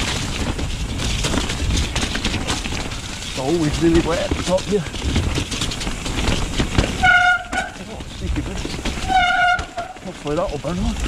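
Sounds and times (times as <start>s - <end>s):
tyres rumbling on trail: 0.0s - 11.0s
bike brakes squealing: 6.9s - 7.8s, 8.9s - 10.1s.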